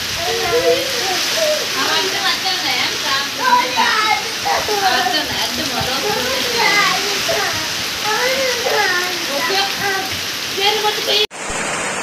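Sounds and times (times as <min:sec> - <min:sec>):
high-pitched voices chattering: 0:00.0 - 0:11.3
heavy rain: 0:00.0 - 0:12.0
wind: 0:00.0 - 0:12.0.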